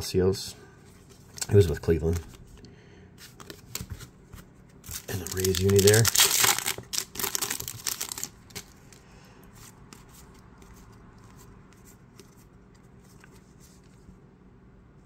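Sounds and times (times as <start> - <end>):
foil wrapper crinkling: 4.8 - 8.8.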